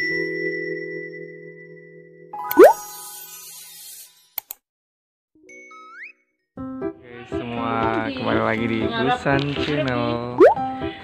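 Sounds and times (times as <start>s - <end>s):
cartoon bloop pitch glide: 2.5s - 2.8s, 10.4s - 10.6s.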